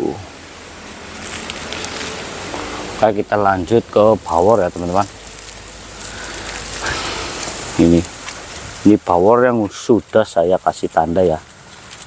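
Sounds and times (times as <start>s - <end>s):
leaves rustling and brushing: 0.0s - 12.0s.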